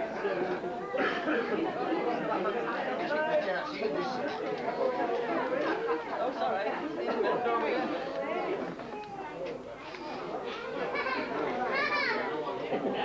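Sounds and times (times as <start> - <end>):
overlapping chatter of many people: 0.0 - 13.0.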